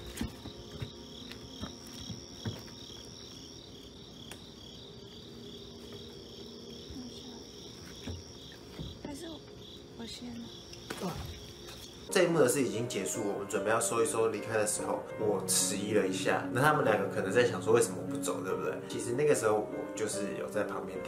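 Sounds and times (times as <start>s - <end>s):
insects trilling: 0.0s - 21.0s
steady high insect tone: 0.0s - 21.0s.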